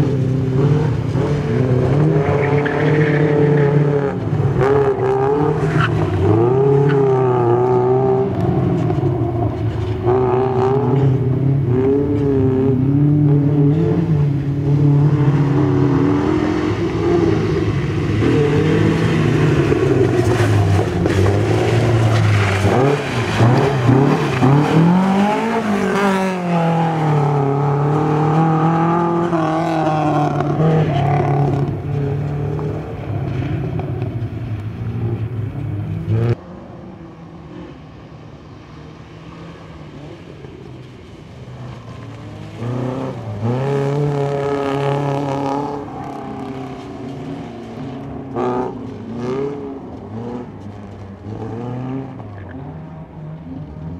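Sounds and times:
rally car engine revving: 0.0 - 53.9.

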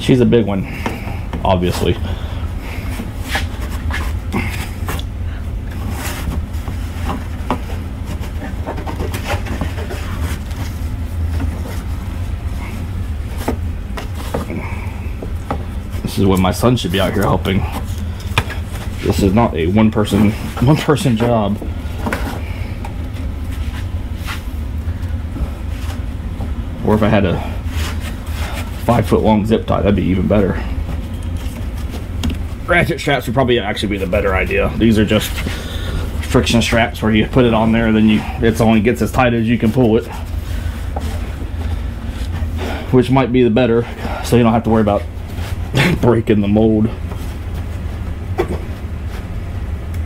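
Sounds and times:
low background hum: 0.0 - 50.0.

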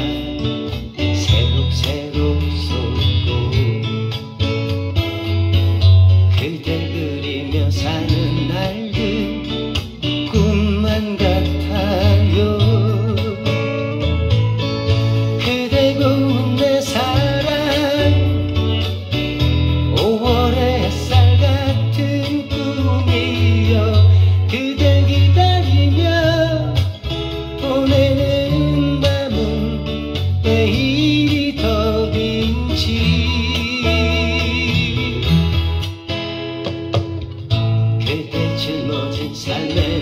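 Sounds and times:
man singing a ballad: 0.0 - 4.8, 6.3 - 36.0, 37.9 - 40.0
acoustic guitar strummed: 0.0 - 40.0.

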